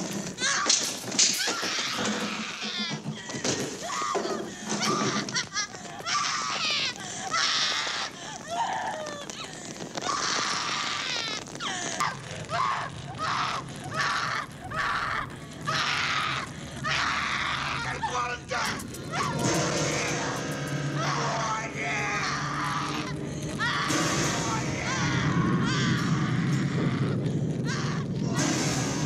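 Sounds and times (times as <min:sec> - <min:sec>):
people screaming in panic: 0:00.4 - 0:29.0.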